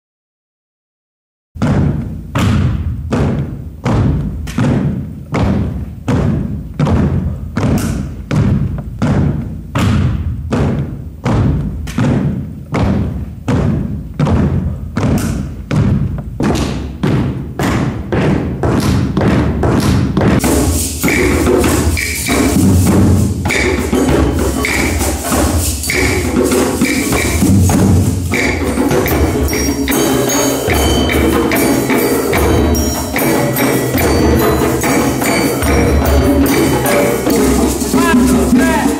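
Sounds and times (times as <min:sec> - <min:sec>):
deep drum beating steadily: 0:12.8 - 0:38.9
hand drums playing: 0:16.1 - 0:38.9
bells: 0:20.4 - 0:38.9
shakers: 0:20.4 - 0:38.9.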